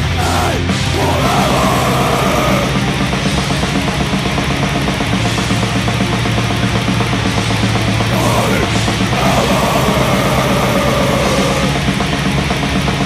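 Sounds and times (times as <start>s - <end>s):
distorted metal guitars: 0.0s - 13.0s
rapid drumming: 0.0s - 13.0s.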